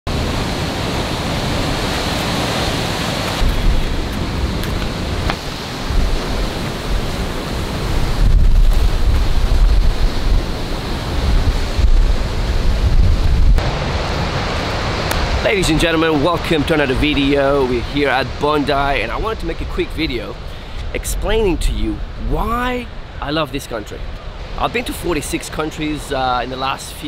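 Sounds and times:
wind buffeting microphone: 0.1s - 25.5s
ocean surf breaking: 0.1s - 27.0s.

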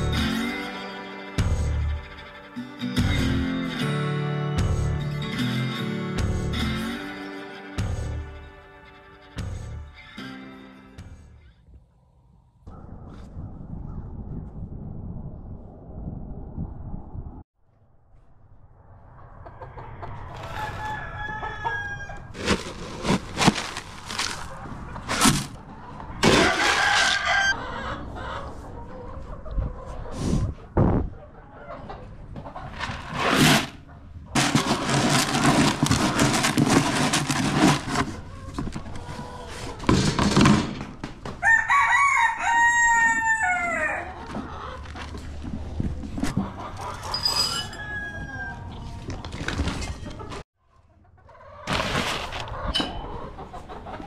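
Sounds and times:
rooster crowing: 20.4s - 22.3s, 26.4s - 27.8s, 41.4s - 44.2s, 47.1s - 48.9s
plastic scoop crunching grain: 22.3s - 24.5s, 34.4s - 38.2s
hens clucking: 24.2s - 33.0s, 33.8s - 40.1s, 43.2s - 47.3s, 48.1s - 54.0s.

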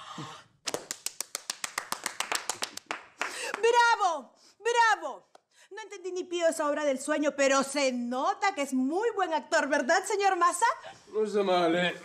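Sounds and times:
hands clapping: 0.6s - 3.8s.

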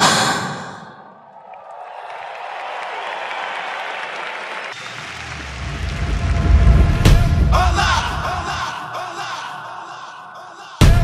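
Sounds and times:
crowd cheering and applauding: 1.1s - 8.6s.

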